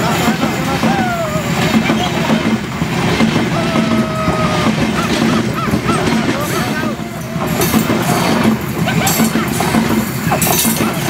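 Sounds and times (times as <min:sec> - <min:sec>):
train wheels rumbling on rails: 0:00.0 - 0:11.0
man talking: 0:05.9 - 0:08.4.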